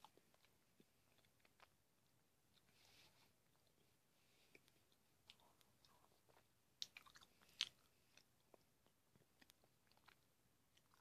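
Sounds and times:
chewing candy: 0:00.0 - 0:01.8, 0:04.5 - 0:11.0.

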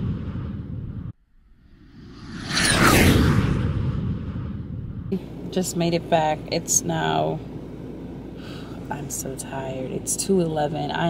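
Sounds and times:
whoosh with deep rumble: 0:00.0 - 0:05.6.

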